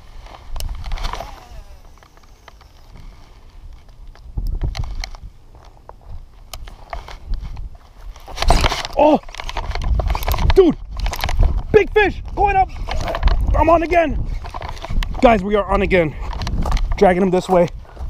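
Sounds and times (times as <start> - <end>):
rustling: 0.0 - 11.7.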